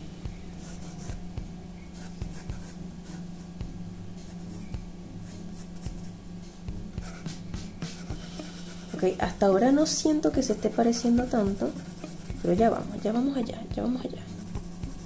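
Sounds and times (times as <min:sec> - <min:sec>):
pencil scratching on paper: 0:02.0 - 0:03.4, 0:07.0 - 0:09.4, 0:10.4 - 0:13.2.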